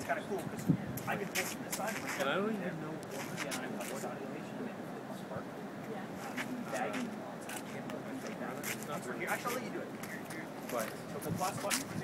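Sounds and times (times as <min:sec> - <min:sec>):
men's voices: 0:00.0 - 0:12.0.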